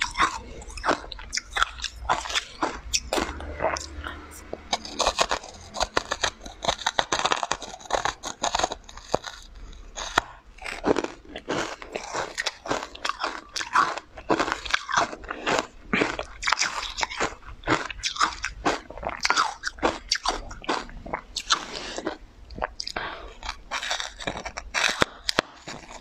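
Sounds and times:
crunchy chewing: 0:00.0 - 0:26.0.

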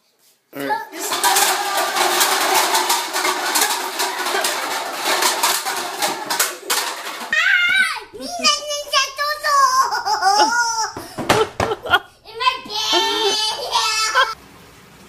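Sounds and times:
children's voices: 0:00.6 - 0:11.0, 0:12.2 - 0:14.4
plastic cups clattering on table: 0:00.9 - 0:07.9.

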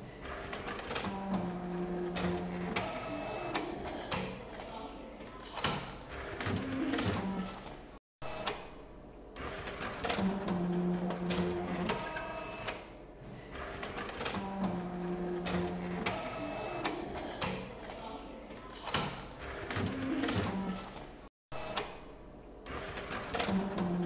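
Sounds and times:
printer motor hum: 0:00.2 - 0:04.6, 0:09.3 - 0:13.0, 0:13.6 - 0:18.0, 0:22.6 - 0:24.0
printer clicks and rattles: 0:09.4 - 0:18.0, 0:18.6 - 0:22.0, 0:22.7 - 0:24.0.

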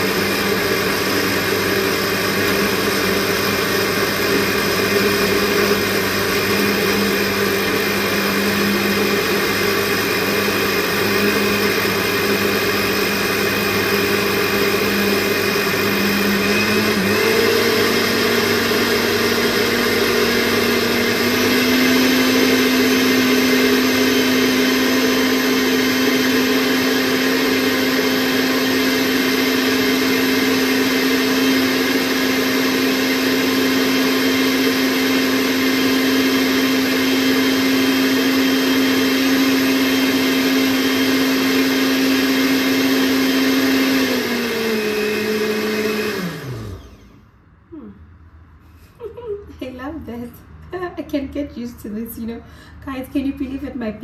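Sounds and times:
blender motor running: 0:00.0 - 0:47.3.

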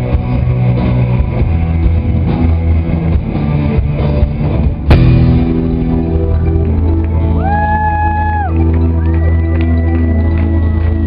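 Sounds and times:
live band music: 0:00.0 - 0:11.0.

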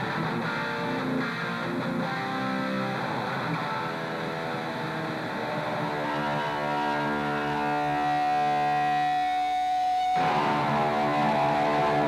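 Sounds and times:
distorted electric guitar solo: 0:00.0 - 0:12.0.

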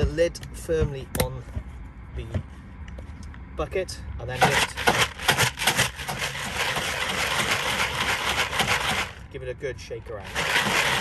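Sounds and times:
pellets rattling in plastic bucket: 0:04.4 - 0:09.2, 0:10.2 - 0:11.0.

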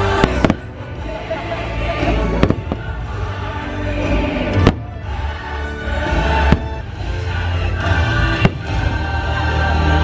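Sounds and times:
music over loudspeakers: 0:00.0 - 0:10.0.

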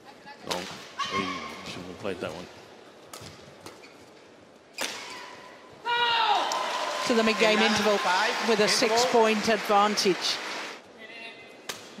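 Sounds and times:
crowd cheering and shouting: 0:05.9 - 0:09.3.

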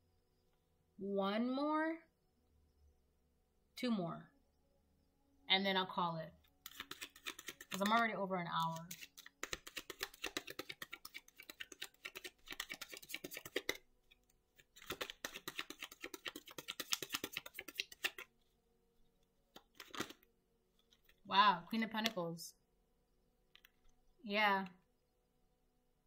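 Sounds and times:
cards being shuffled: 0:06.6 - 0:18.3, 0:19.5 - 0:20.3.

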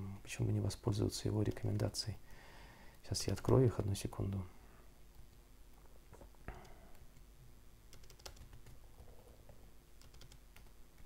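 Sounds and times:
computer keyboard clicking: 0:07.9 - 0:08.8, 0:10.0 - 0:11.0.

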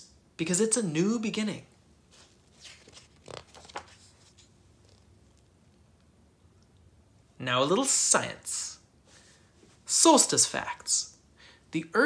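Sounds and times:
paper page rustling: 0:02.1 - 0:05.5.

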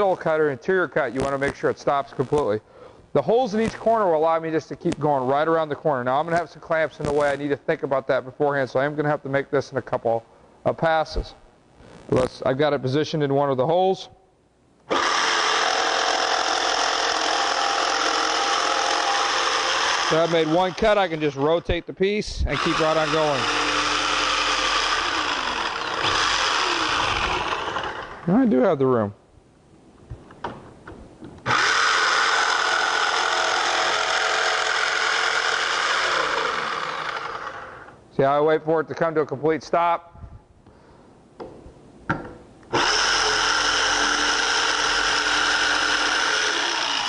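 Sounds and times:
electric jigsaw cutting wood: 0:14.9 - 0:21.2, 0:22.5 - 0:28.2, 0:31.4 - 0:37.9, 0:42.7 - 0:47.0.

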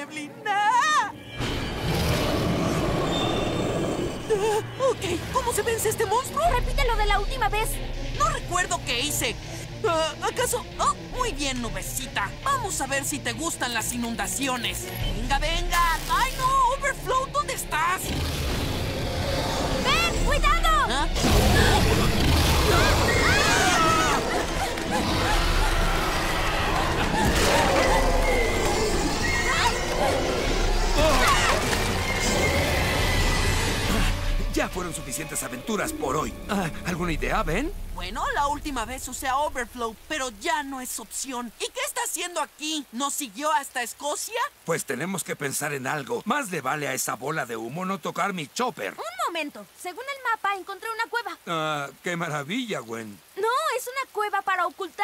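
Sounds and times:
cartoon monster roar: 0:18.0 - 0:34.4
storm wind and rain: 0:18.4 - 0:55.0
shrill wailing cries: 0:22.6 - 0:33.9.

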